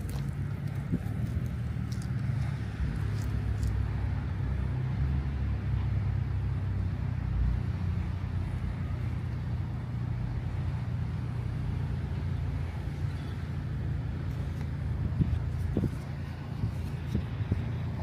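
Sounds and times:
low engine rumble: 0.0s - 18.0s.

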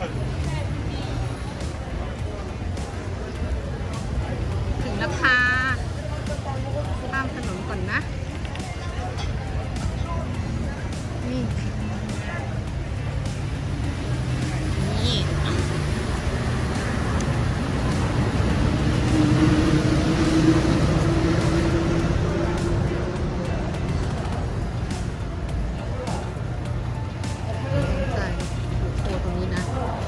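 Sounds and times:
rumble of passing cars: 0.0s - 30.0s
vehicle passing by: 13.0s - 25.2s.

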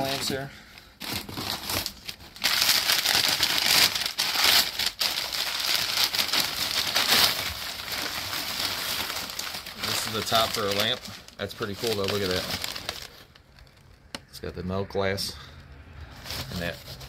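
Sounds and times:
newspaper crinkling and rustling: 0.0s - 14.0s, 16.2s - 17.0s.

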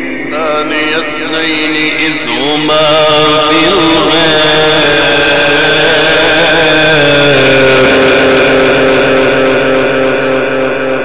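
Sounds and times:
amplified voice reciting with echo: 0.0s - 11.0s.

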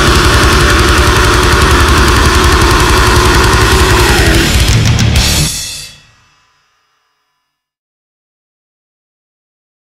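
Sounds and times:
fast double-bass kick drum: 0.0s - 5.6s
distorted guitar chord: 0.0s - 7.5s.

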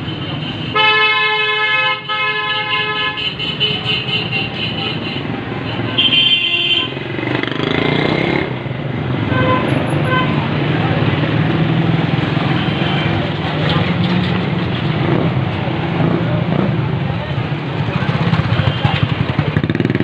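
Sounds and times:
vehicle horns: 0.0s - 7.9s, 9.2s - 10.6s, 18.3s - 19.4s
motorcycles and traffic noise: 0.0s - 20.0s.

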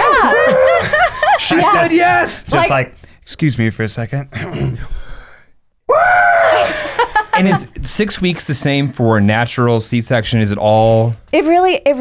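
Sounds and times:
person yelling: 1.4s - 2.8s.

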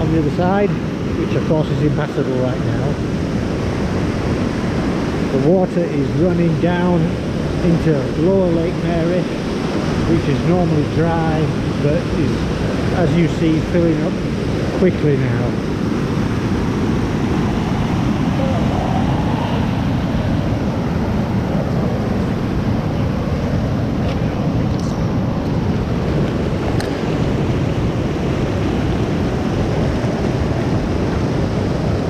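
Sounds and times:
floodwater rushing over rocks: 0.0s - 32.0s.

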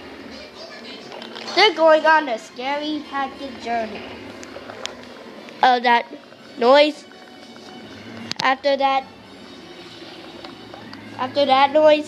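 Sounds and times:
music from television speakers: 9.1s - 11.4s.

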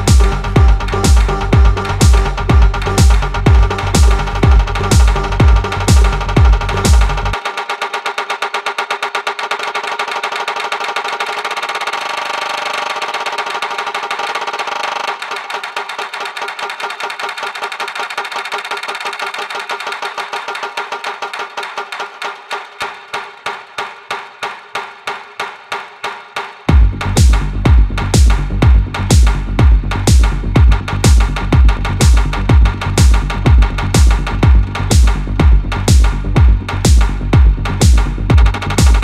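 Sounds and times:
faint low thumps: 0.0s - 7.4s, 26.7s - 39.0s
kick drum and bass: 0.0s - 7.5s, 26.7s - 39.0s
fast repeating synth pattern: 0.0s - 22.5s, 26.7s - 39.0s.

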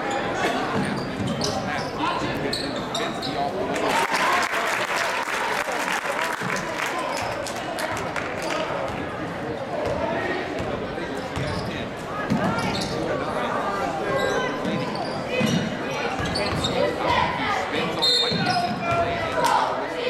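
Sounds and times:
spectators chattering: 0.0s - 20.0s.

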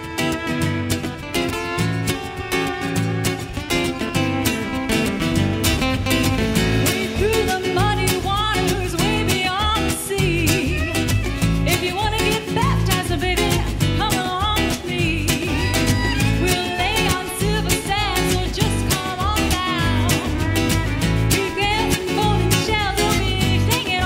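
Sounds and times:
live band playing: 0.0s - 24.0s
woman singing: 6.7s - 24.0s.

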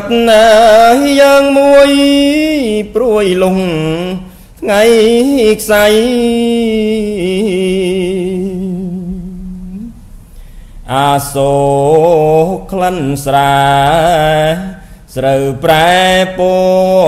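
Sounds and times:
man chanting: 0.0s - 9.9s, 10.9s - 17.0s.

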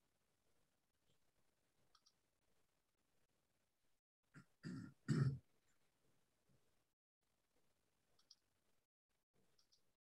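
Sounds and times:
person clearing throat: 4.4s - 5.4s.

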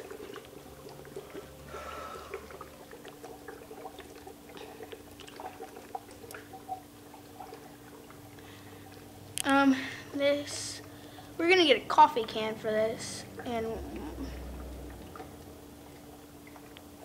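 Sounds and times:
dry ice bubbling in water: 0.0s - 17.0s
low steady hum: 0.0s - 17.0s.

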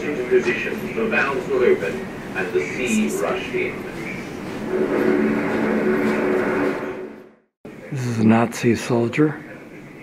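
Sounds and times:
loud steady rumbling noise: 0.0s - 8.1s.

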